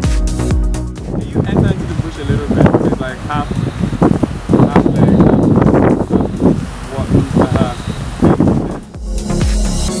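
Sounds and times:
wind rumbling on microphone: 0.9s - 9.0s
people talking: 1.2s - 3.8s, 4.4s - 8.8s.

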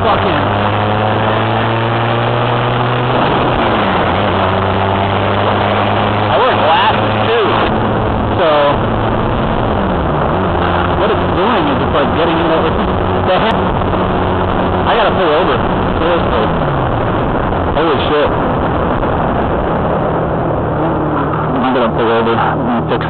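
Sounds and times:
motorcycle engine running: 0.0s - 23.0s
steady rush of noise: 0.0s - 23.0s.

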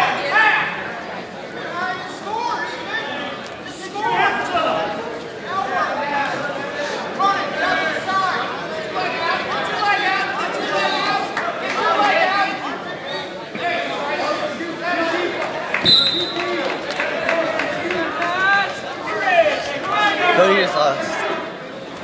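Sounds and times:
spectators talking and calling out: 0.0s - 22.0s.

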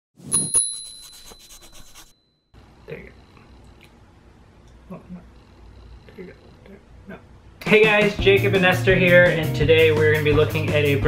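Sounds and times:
scratchy brushing: 0.2s - 2.2s
bicycle bell ringing: 0.3s - 1.6s.

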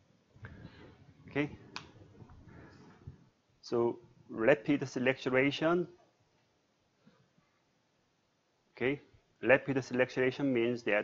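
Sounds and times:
man speaking: 1.3s - 1.6s, 3.6s - 6.0s, 8.8s - 11.0s.

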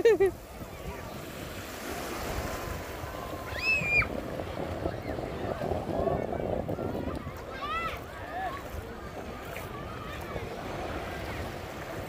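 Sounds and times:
surf: 0.0s - 12.0s
wind: 0.0s - 12.0s.

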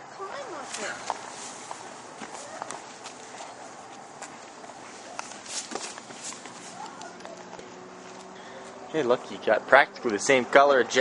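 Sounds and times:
footsteps on pavement: 0.3s - 8.9s.

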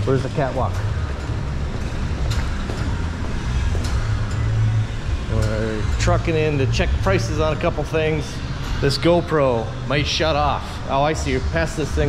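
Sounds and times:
low rumbling garage noise: 0.0s - 12.0s.

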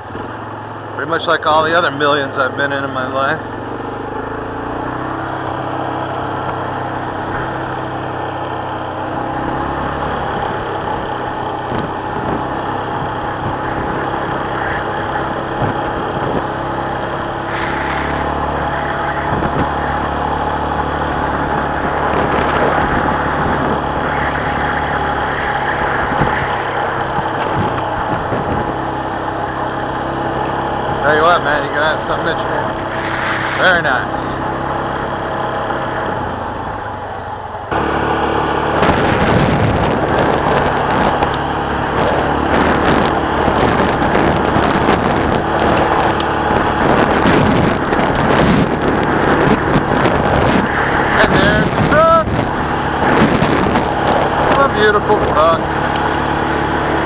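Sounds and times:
quad bike engine running: 0.0s - 57.0s.

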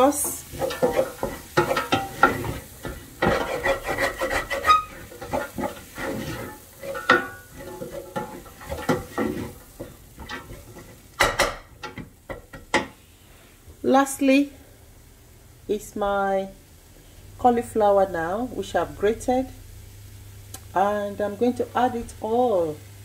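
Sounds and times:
wooden spoon scraping a pot: 0.0s - 11.1s
vegetables sizzling: 0.0s - 23.0s.

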